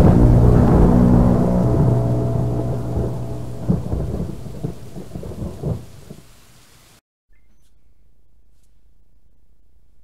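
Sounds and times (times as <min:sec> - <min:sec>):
rumbling thunder: 0:00.0 - 0:06.4
rain: 0:00.0 - 0:07.0.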